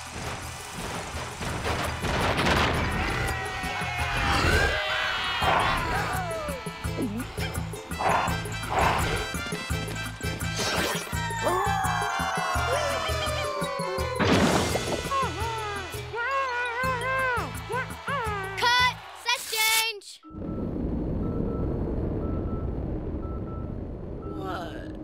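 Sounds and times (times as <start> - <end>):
crash: 0.0 - 3.4, 14.2 - 15.2
cartoon music with bass beat: 5.8 - 18.8.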